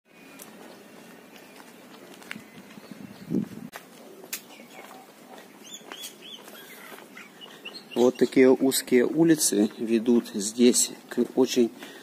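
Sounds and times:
birds chirping: 0.1s - 12.0s.

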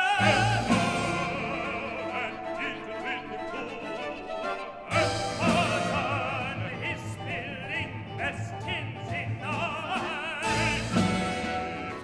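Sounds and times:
operatic singing with vibrato: 0.0s - 12.0s
orchestra playing: 0.0s - 12.0s.

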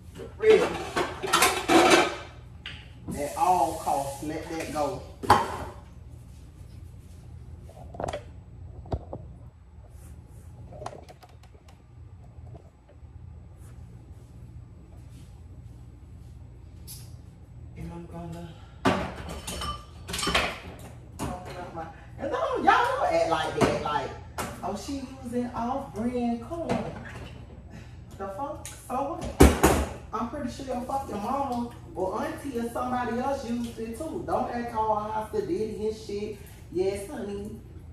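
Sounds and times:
low steady hum: 0.0s - 37.9s.

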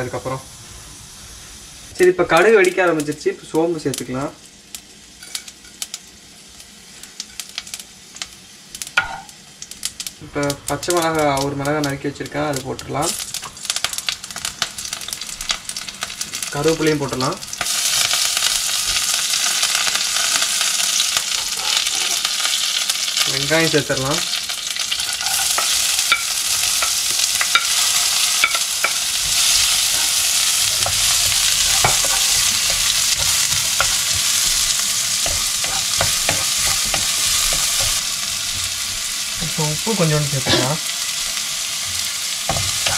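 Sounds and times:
loud steady sizzle: 0.0s - 42.9s
hot oil crackling and popping: 1.6s - 42.9s
wooden spoon stirring: 24.9s - 38.1s.

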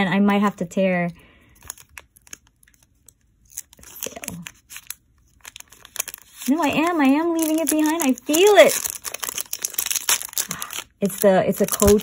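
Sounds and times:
foil wrapper tearing and crinkling: 1.4s - 12.0s.

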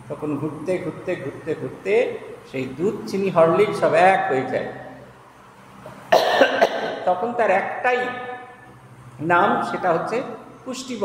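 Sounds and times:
man coughing: 6.1s - 7.1s.

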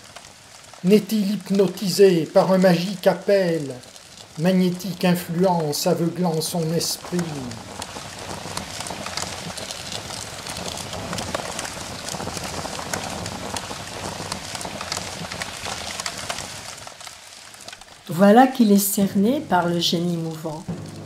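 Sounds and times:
fire crackling: 0.0s - 21.0s.

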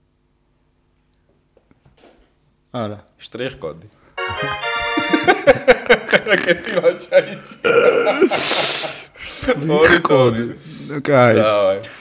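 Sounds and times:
men laughing: 4.6s - 9.5s.

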